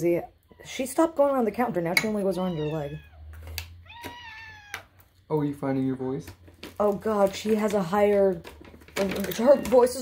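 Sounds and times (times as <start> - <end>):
cat meowing: 2.4 - 5.0.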